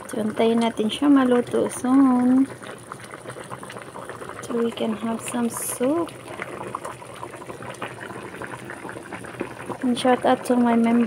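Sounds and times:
broth bubbling in a pan: 0.0 - 11.0.

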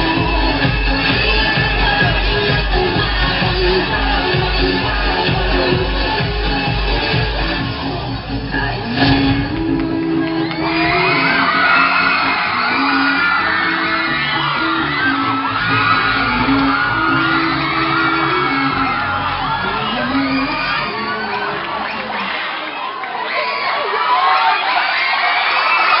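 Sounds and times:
dance music: 0.0 - 26.0
audience cheering and whooping: 8.5 - 26.0.

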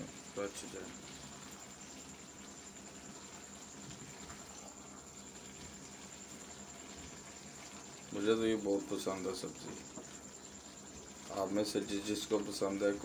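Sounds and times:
vegetables sizzling: 0.0 - 13.0.

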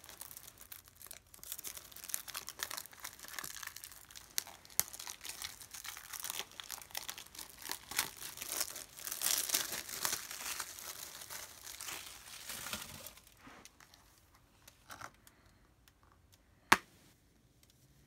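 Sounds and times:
plastic shrink wrap crinkling: 0.0 - 15.3.

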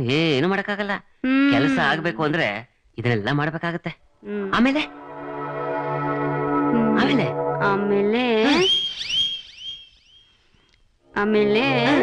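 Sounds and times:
wavering vibrato tone: 4.4 - 10.4
rising whistle-like tone: 8.4 - 10.4.

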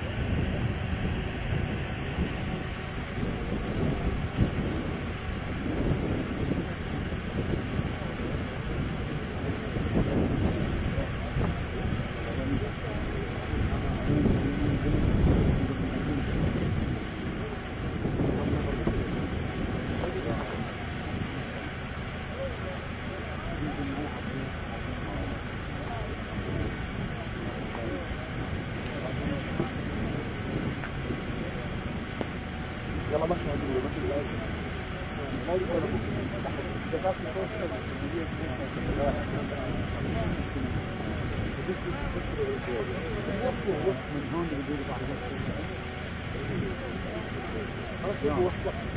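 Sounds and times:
group of people talking: 0.0 - 48.9
wind rumbling on microphone: 0.0 - 48.9.

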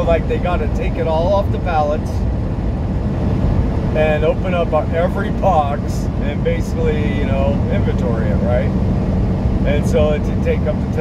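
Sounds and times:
road noise: 0.0 - 11.0
truck engine rumble: 0.0 - 11.0.

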